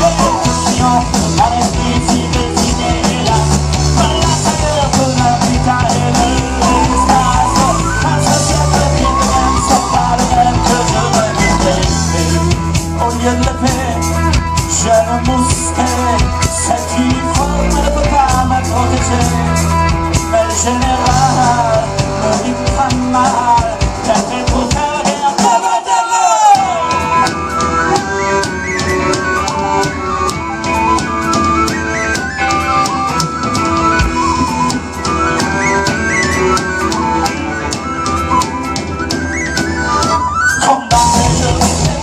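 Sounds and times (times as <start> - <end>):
live rock band playing: 0.0 - 42.0.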